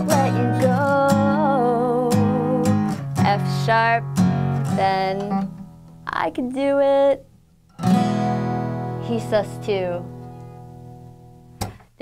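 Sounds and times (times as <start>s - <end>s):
acoustic guitar chord ringing: 0.0s - 5.8s, 7.7s - 11.7s.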